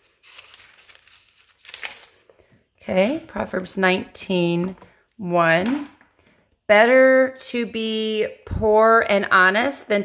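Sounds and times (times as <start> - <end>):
thin pages rustling: 0.0 - 2.6.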